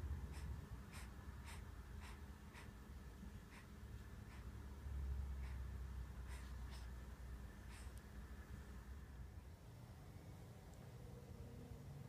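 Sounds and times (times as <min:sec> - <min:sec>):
newborn breathing softly: 0:00.0 - 0:08.8.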